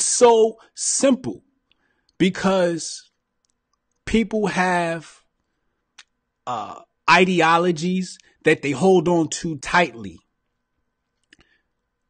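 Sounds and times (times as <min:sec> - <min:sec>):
man speaking into microphone: 0:00.0 - 0:01.4, 0:02.2 - 0:03.2, 0:04.0 - 0:05.3, 0:06.5 - 0:10.3
faint steady hum: 0:00.0 - 0:12.0.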